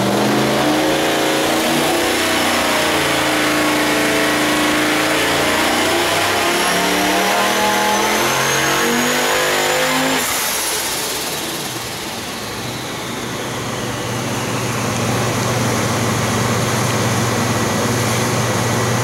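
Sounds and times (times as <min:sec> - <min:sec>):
engine revving under load: 0:00.0 - 0:19.0.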